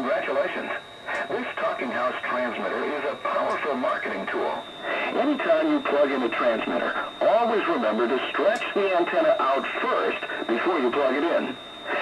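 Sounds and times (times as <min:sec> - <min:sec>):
voice through radio speaker: 0:00.0 - 0:12.0.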